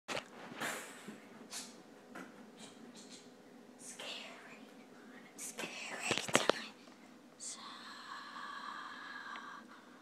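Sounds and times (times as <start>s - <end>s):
person whispering: 3.8s - 6.8s, 7.4s - 9.7s.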